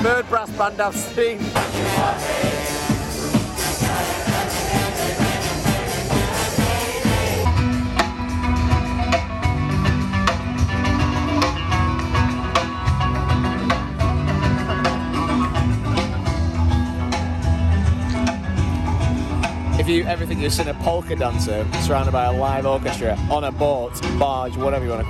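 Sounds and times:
crowd: 0.0s - 25.0s
live brass band playing: 1.6s - 7.5s
live band with guitars and drums: 1.6s - 25.0s.

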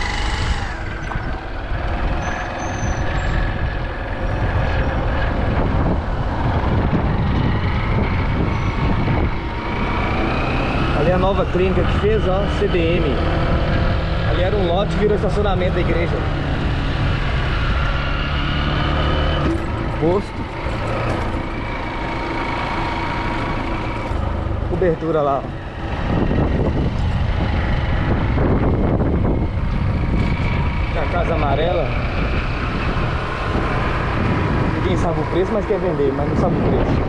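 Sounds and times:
motorcycle engine running: 0.0s - 37.0s
wind and road rumble: 0.0s - 37.0s.

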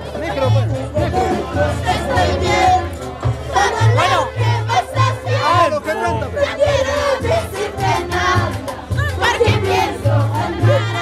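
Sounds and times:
band music with bass line: 0.0s - 11.0s
group singing and shouting: 0.0s - 11.0s.

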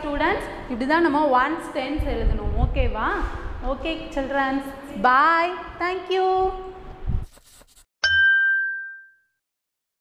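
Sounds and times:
bright ding chime: 8.0s - 9.4s.

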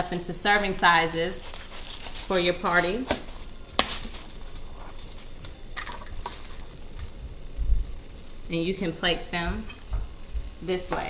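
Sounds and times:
knife cutting bread rolls: 0.0s - 5.2s.

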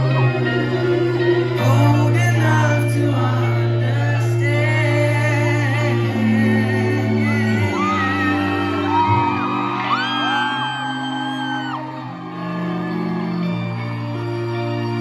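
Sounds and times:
live band music: 0.0s - 15.0s.

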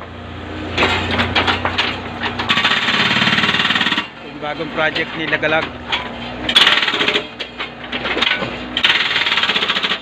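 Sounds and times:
hydraulic breaker hammering ground: 0.8s - 10.0s.

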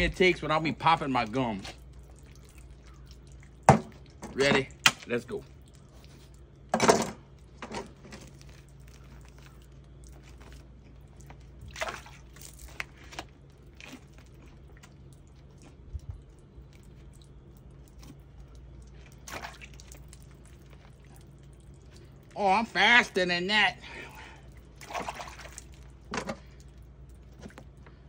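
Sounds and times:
low steady hum: 0.0s - 28.0s
wet skinning sounds: 0.3s - 28.0s.

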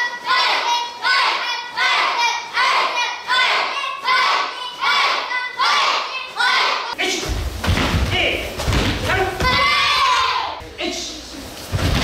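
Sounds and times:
bare feet thumping on mat: 7.3s - 9.7s.

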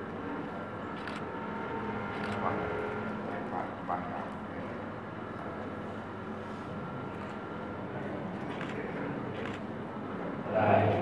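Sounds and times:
hall room noise: 0.0s - 11.0s.

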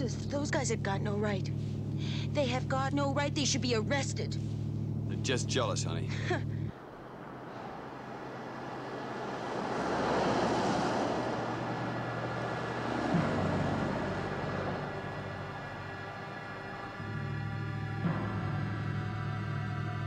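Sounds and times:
road traffic passing: 0.0s - 20.0s.

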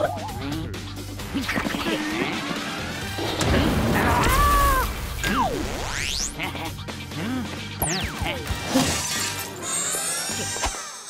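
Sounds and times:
background music: 0.0s - 11.0s
cartoon crash: 3.3s - 6.4s.

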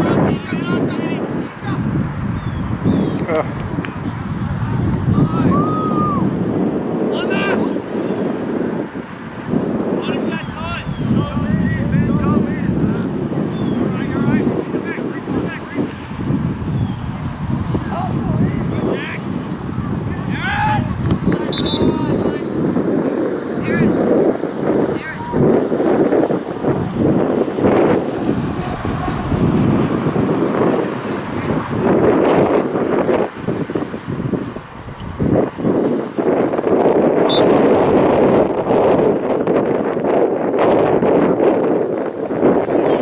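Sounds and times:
wind on microphone: 0.0s - 43.0s.

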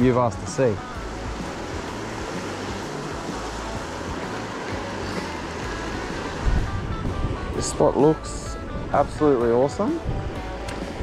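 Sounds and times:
music playing: 0.0s - 11.0s
water rushing over boulders: 0.0s - 11.0s
wind rumble on microphone: 0.0s - 11.0s.

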